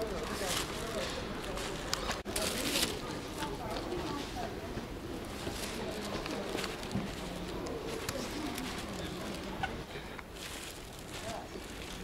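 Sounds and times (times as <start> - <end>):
city street hum: 0.0 - 12.0.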